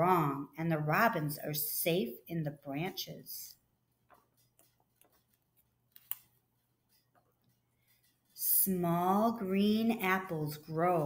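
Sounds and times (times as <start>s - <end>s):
paper page turning rustle: 4.1s - 8.4s.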